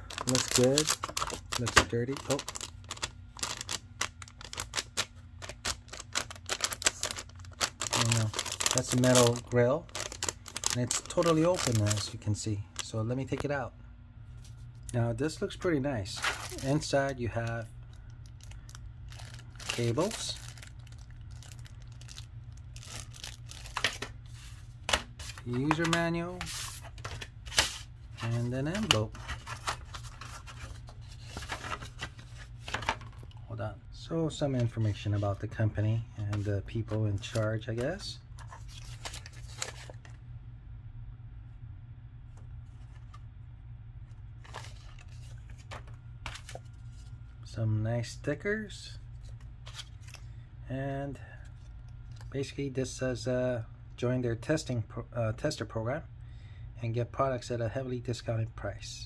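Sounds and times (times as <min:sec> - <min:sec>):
plastic film crackling: 0:00.0 - 0:12.2, 0:16.2 - 0:24.1
paper envelope rustling: 0:00.0 - 0:12.3, 0:16.2 - 0:17.6, 0:18.4 - 0:33.3, 0:38.4 - 0:40.2, 0:44.4 - 0:47.1, 0:49.3 - 0:50.2
steady low hum: 0:00.0 - 0:59.0.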